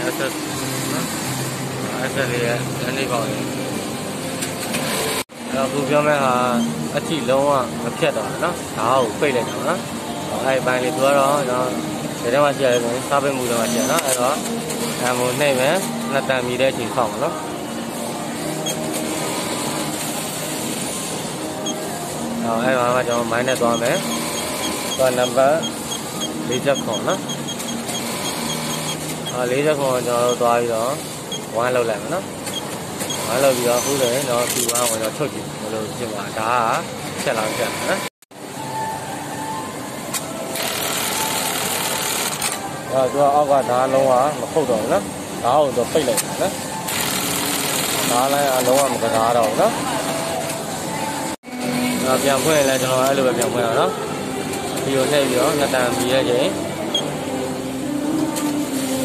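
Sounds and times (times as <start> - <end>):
mechanical hum: 0.0 - 59.0
sewing machine whirring: 18.4 - 31.4, 40.5 - 42.7, 46.1 - 50.6.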